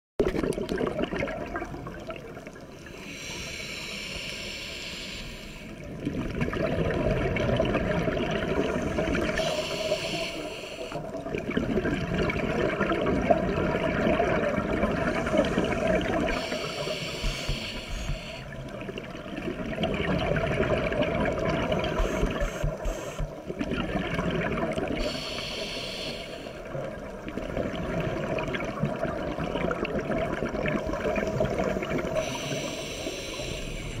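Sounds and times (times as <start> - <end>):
regulator inhale hiss: 2.8 - 5.9, 8.6 - 11.1, 15.0 - 18.7, 21.8 - 23.4, 25.0 - 26.7, 31.2 - 34.0.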